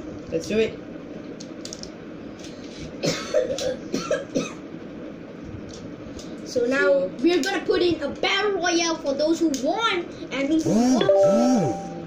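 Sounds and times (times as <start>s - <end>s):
person coughing and clearing throat: 3.0s - 4.6s.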